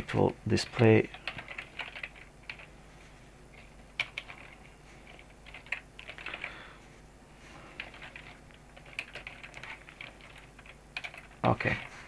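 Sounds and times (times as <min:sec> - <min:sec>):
typing on computer keyboard: 0:00.8 - 0:02.7, 0:03.6 - 0:06.5, 0:07.8 - 0:11.9.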